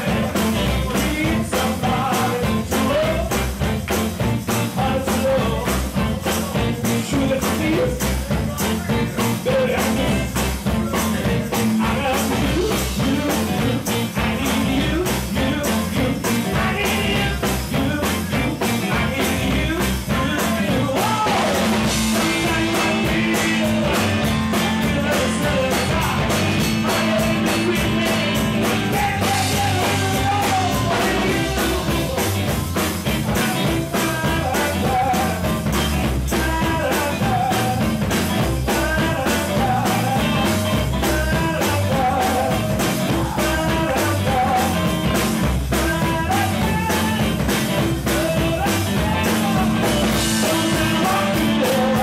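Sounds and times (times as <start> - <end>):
bass guitar: 0.0 - 52.0
drum kit steady beat: 0.0 - 52.0
guitar melodic line: 0.0 - 52.0.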